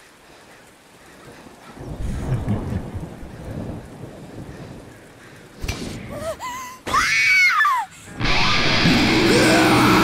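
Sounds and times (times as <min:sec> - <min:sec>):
steady rain: 0:00.0 - 0:10.0
thunder rumbling: 0:01.7 - 0:06.4.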